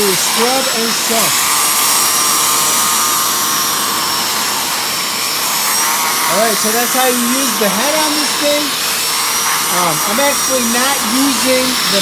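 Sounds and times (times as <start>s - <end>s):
carpet cleaner suction with whine: 0.0s - 12.0s.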